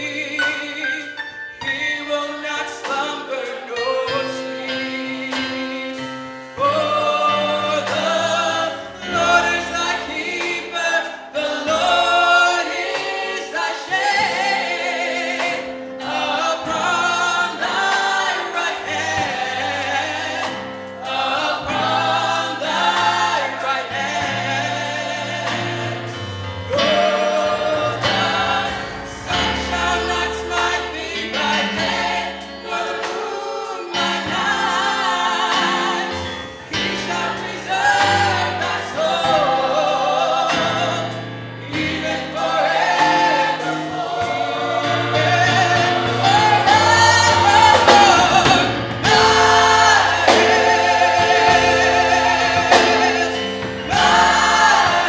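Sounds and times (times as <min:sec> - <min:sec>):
gospel choir singing: 0:00.0 - 0:55.0
lead singer singing: 0:36.8 - 0:55.0.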